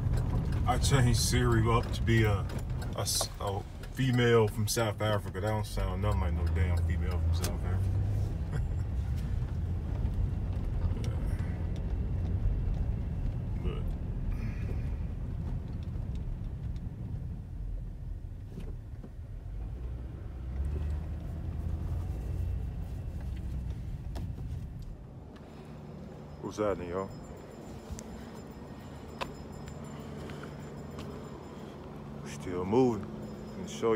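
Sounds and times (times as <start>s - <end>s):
car interior rumble: 0.0s - 33.9s.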